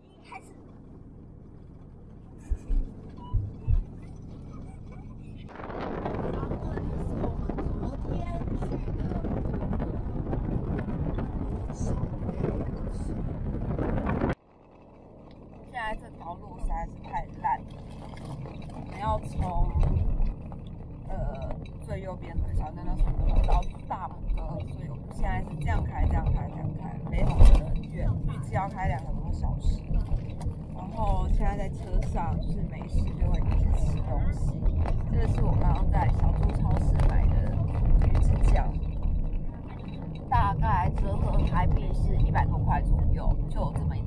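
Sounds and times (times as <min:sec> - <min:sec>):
car cabin rumble: 0:00.0 - 0:14.4, 0:15.2 - 0:44.0
wind rushing on microphone: 0:00.0 - 0:14.4, 0:15.4 - 0:44.0
low rumble: 0:00.0 - 0:44.0
voices: 0:02.0 - 0:13.2, 0:15.6 - 0:44.0.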